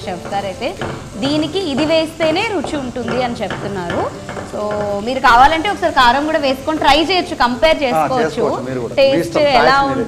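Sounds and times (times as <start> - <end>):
food sizzling in a frying pan: 0.0 - 10.0.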